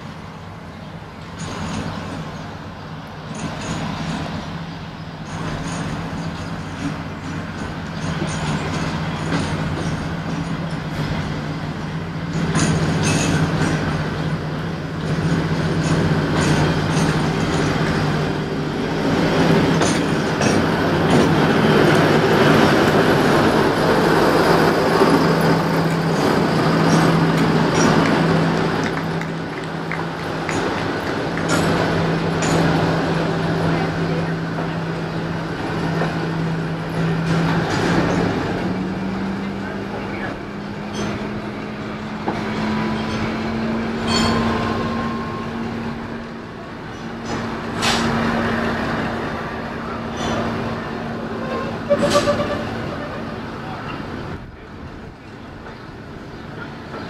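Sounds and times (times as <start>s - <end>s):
diesel locomotive engine drone: 0.0s - 57.0s
wheels clicking on track: 1.2s - 57.0s.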